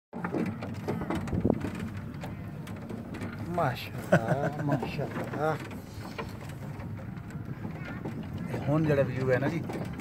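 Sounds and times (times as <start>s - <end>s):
chair lift rumble: 0.2s - 10.0s
wind on microphone: 0.8s - 2.3s.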